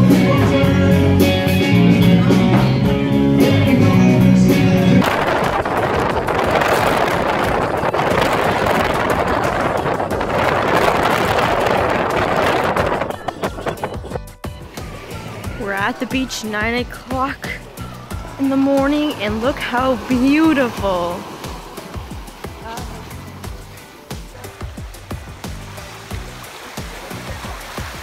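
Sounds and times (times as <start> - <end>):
live band with guitar: 0.0 - 10.8
steady rushing noise: 4.6 - 28.0.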